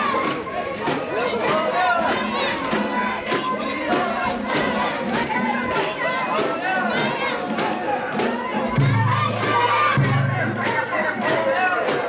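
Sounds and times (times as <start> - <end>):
people chanting rhythmically: 0.0 - 12.0.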